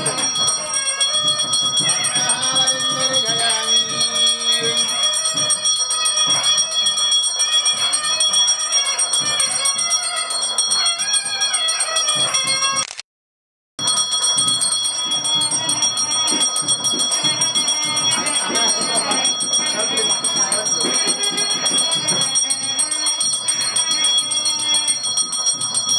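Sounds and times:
temple bells ringing: 0.0s - 12.8s, 13.8s - 25.9s
people singing: 1.8s - 5.2s.

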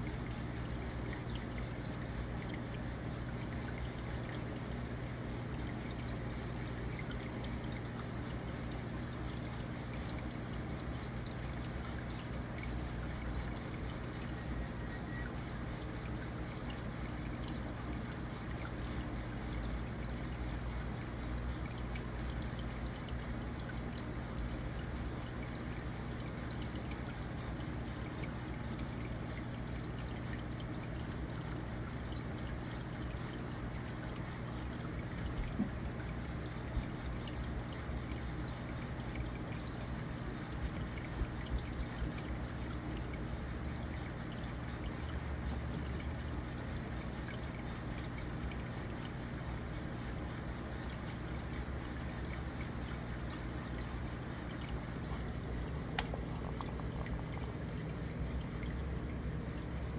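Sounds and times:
aquarium filter water trickling: 0.0s - 59.9s
low steady hum: 0.0s - 59.9s.

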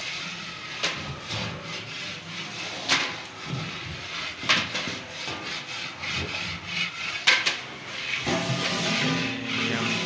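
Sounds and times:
cooking pots clattering and scraping: 0.0s - 10.0s.

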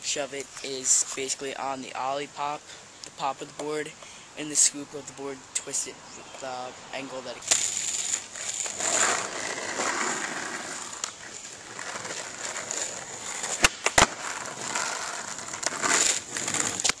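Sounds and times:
skateboard wheels rolling on asphalt: 4.5s - 17.0s
skateboard cracks: 7.4s - 17.0s.

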